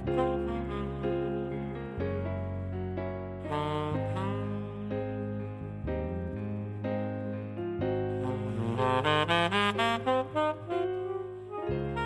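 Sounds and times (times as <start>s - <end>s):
tenor saxophone playing: 0.0s - 2.0s, 3.4s - 5.5s, 8.1s - 12.0s
backing track: 0.0s - 12.0s.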